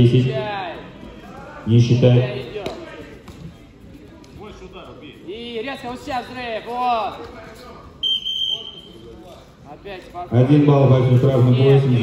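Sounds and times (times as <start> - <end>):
background voices in sports hall: 0.0 - 12.0.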